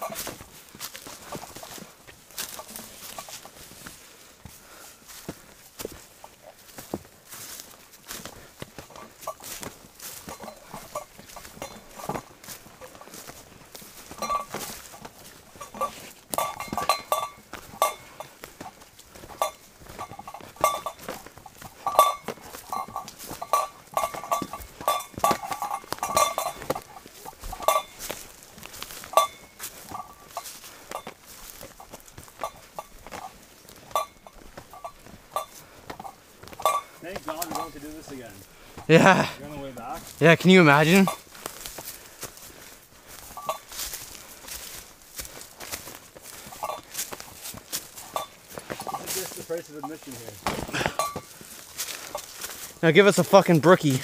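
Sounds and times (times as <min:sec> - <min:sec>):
footsteps on forest trail: 0:00.0 - 0:54.0.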